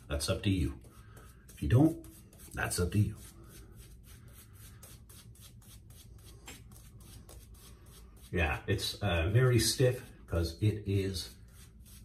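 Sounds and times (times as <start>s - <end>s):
shaving brush brushing stubble: 0.0s - 12.0s.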